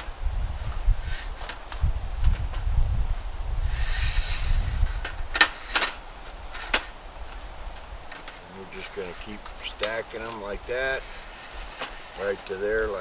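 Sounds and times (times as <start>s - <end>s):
metal slats rattling and scraping: 3.7s - 7.0s, 7.7s - 13.0s.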